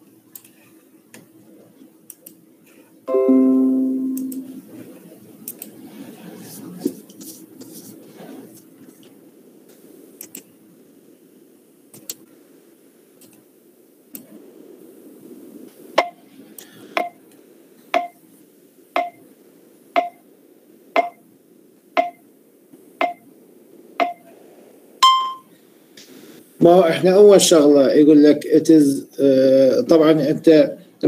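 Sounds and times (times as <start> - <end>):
faint background hum: 0.0 - 31.0
higher timer beep: 3.1 - 4.6, 21.0 - 21.2, 22.0 - 22.2, 25.0 - 25.5
electronic timer ticks: 18.0 - 18.2, 19.0 - 19.2, 20.0 - 20.2, 21.0 - 21.2, 22.0 - 22.2, 23.0 - 23.2, 24.0 - 24.2.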